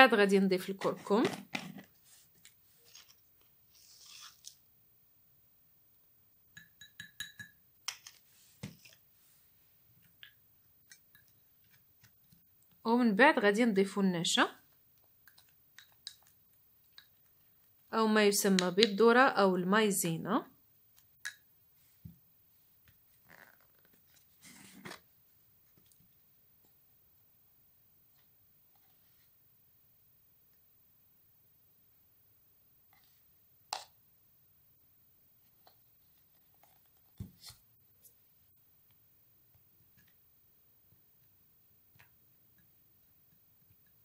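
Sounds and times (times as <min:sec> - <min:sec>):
spoon clinking against glass: 0:06.6 - 0:07.6.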